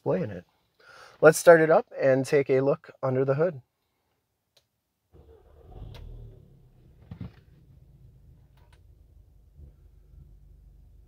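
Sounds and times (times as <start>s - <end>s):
car engine starting and idling: 5.2s - 11.0s.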